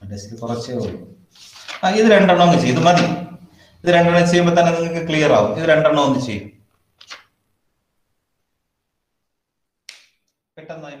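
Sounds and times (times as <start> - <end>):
man speaking: 0.0 - 1.2, 1.8 - 6.6, 10.6 - 11.0.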